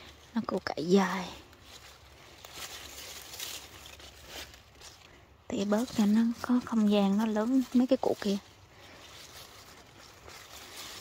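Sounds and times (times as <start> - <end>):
leaves rustling: 0.0 - 11.0.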